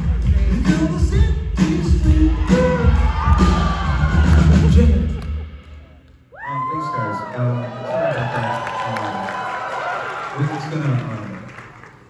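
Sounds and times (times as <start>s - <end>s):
live band music: 0.0s - 6.3s
audience cheering and whooping: 2.0s - 11.9s.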